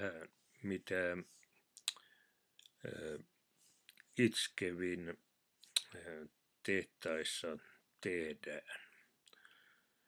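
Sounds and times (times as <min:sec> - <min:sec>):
man speaking: 0:00.0 - 0:01.4, 0:02.8 - 0:03.2, 0:04.2 - 0:05.2, 0:05.8 - 0:09.0.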